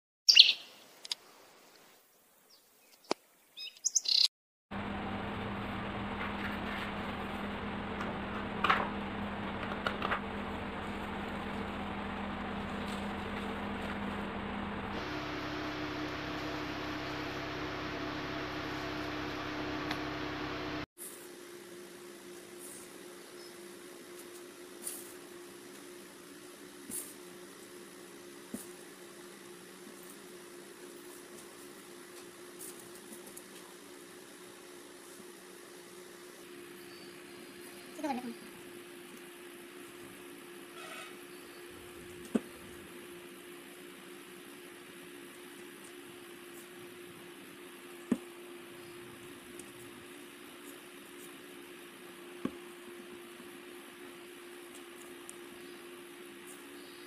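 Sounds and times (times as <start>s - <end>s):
machine hum: 4.7s - 22.3s.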